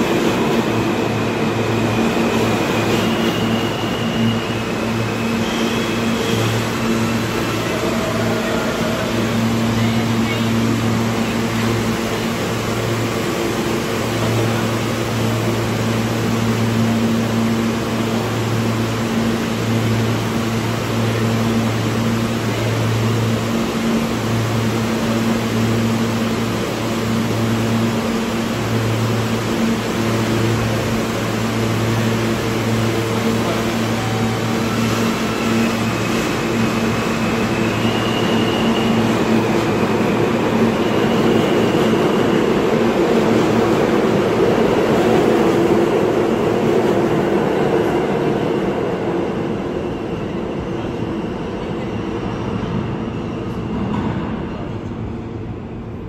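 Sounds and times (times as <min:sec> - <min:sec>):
subway train humming: 0:00.0 - 0:56.0
train pulling out rumble: 0:00.0 - 0:56.0.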